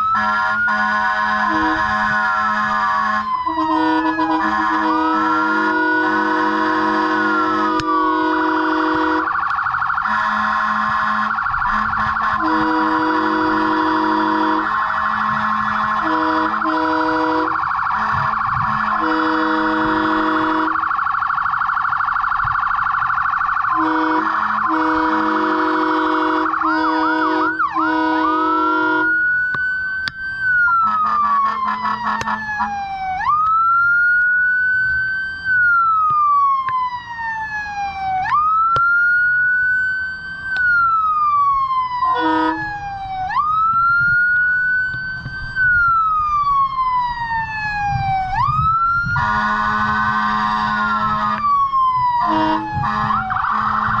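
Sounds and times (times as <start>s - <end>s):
fast warbling siren: 0.0s - 54.0s
slow wailing siren: 0.0s - 54.0s
low horn-like tone: 0.2s - 9.4s, 10.1s - 20.9s, 23.8s - 29.2s, 42.1s - 42.7s, 49.1s - 51.4s, 52.2s - 54.0s.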